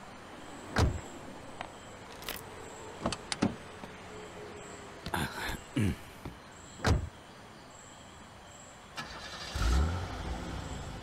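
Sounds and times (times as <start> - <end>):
car door thump: 6.8 - 7.1.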